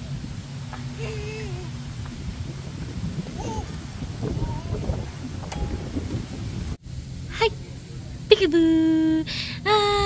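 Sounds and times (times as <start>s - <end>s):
wind buffeting microphone: 0.0s - 8.2s.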